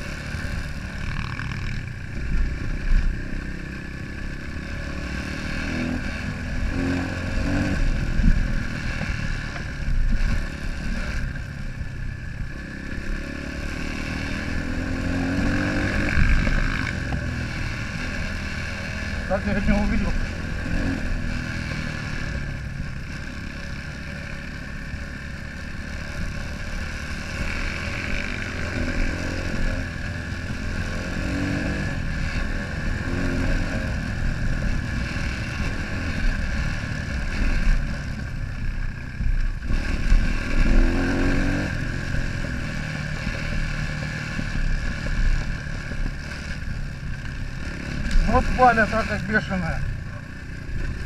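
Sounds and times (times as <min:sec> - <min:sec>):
motorcycle engine revving: 0:00.0 - 0:51.0
wind rumble on microphone: 0:05.6 - 0:19.2.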